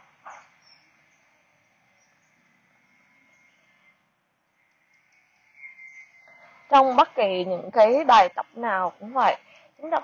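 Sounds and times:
faint outdoor hiss: 0.0s - 10.0s.

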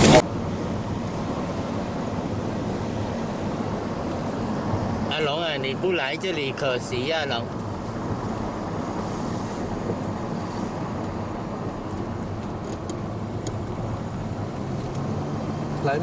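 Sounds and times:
engine and tyre noise on wet road: 0.0s - 16.0s.

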